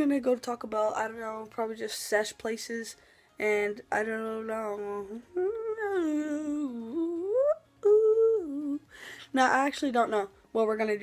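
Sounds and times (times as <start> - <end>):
boy's long wordless vocal sound: 5.0 - 8.9.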